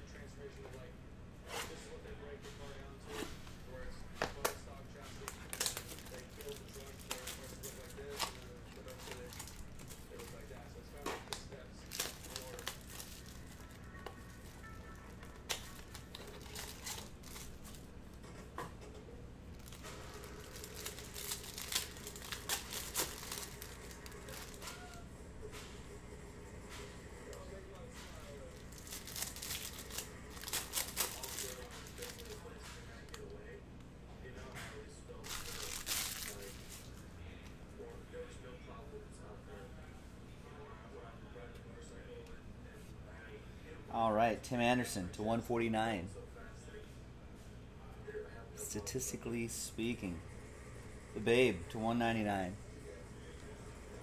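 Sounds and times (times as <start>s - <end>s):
packaging crinkling and tearing: 5.2s - 10.6s, 11.2s - 17.9s, 19.5s - 25.0s, 28.5s - 33.3s, 35.2s - 37.0s.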